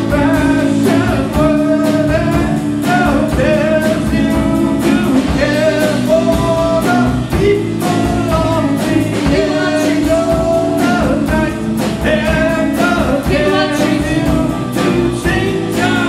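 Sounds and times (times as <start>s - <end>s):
rock band playing: 0.0s - 16.0s
steady drumbeat: 0.0s - 16.0s.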